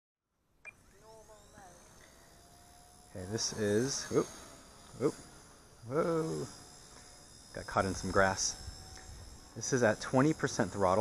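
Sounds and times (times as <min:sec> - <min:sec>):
small electric motor whine: 0:00.7 - 0:11.0.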